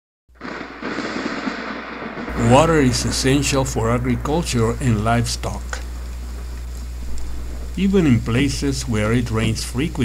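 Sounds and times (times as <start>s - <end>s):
crackling thunder: 0.3s - 9.0s.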